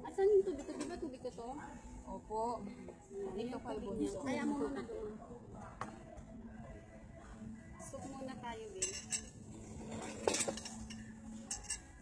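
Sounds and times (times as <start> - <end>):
cutlery clinking on plates: 8.8 - 11.9.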